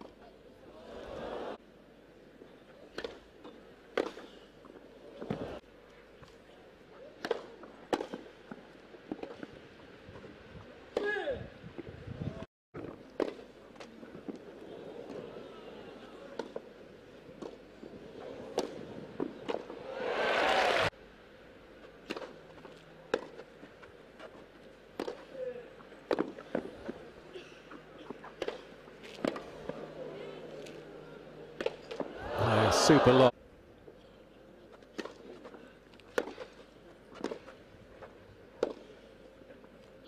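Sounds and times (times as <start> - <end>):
crowd applause: 19.9 - 20.9, 32.2 - 33.3
crowd laughter: 32.2 - 33.3.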